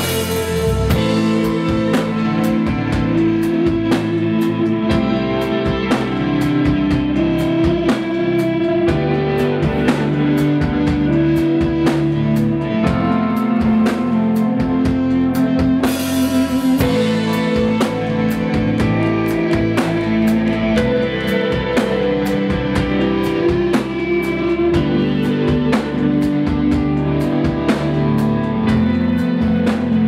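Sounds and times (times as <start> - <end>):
bass guitar: 0.0 - 30.0
drum kit: 0.0 - 30.0
electric guitar chords: 0.0 - 30.0.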